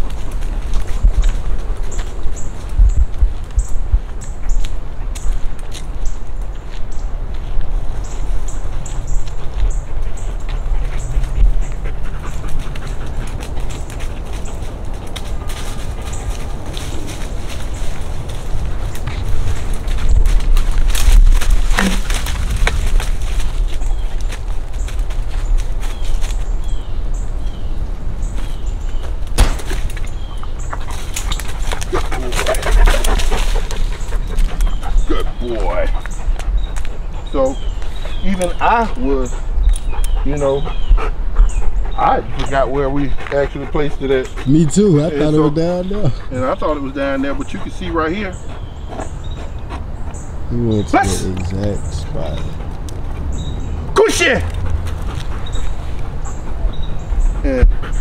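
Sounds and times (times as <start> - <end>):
leaves and twigs rustling: 0.0 - 39.1
wind and handling rumble: 0.0 - 58.0
dog panting: 9.2 - 20.8, 30.4 - 58.0
footsteps in leaf litter: 14.0 - 26.6.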